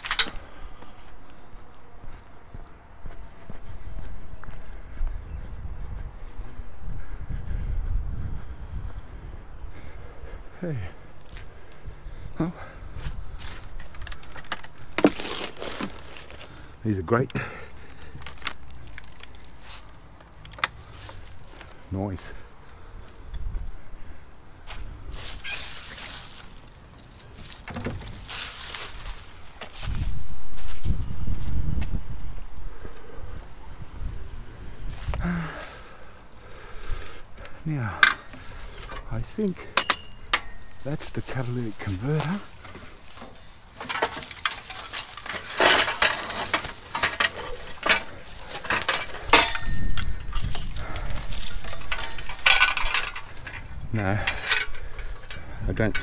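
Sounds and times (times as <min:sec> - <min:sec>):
scrap metal clattering: 0:38.0 - 0:56.0.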